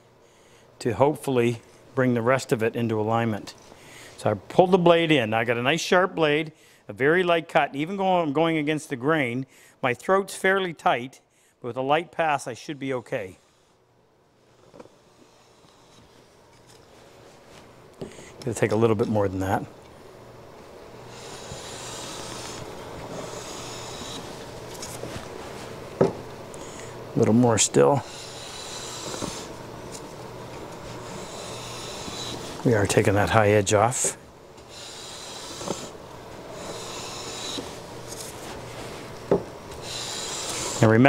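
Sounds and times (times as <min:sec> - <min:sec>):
hand plane shaving hiss: 0:14.7 - 0:16.3, 0:21.0 - 0:25.8, 0:27.2 - 0:29.6, 0:30.8 - 0:33.4, 0:34.6 - 0:41.0.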